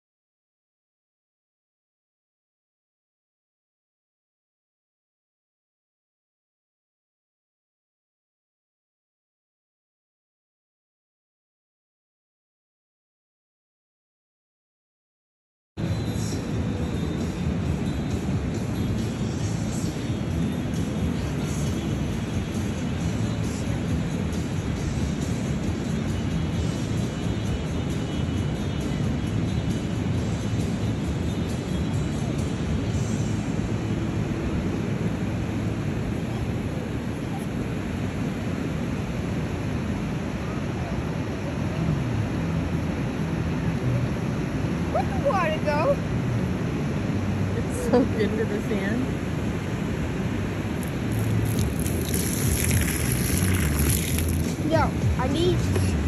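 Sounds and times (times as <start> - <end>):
ocean surf: 15.8 - 56.0
wind on microphone: 15.8 - 56.0
child's voice: 54.6 - 56.0.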